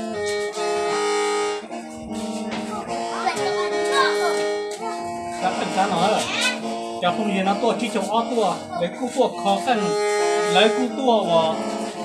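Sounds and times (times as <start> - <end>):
mouth organ reed notes over drone: 0.0 - 12.0.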